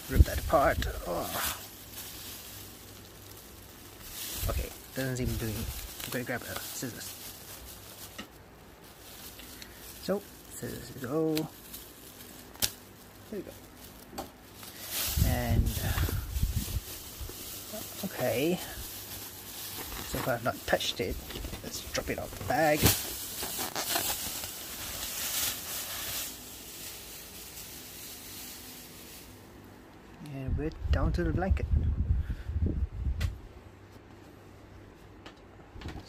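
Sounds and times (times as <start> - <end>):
plastic rustling: 0.0 - 29.7.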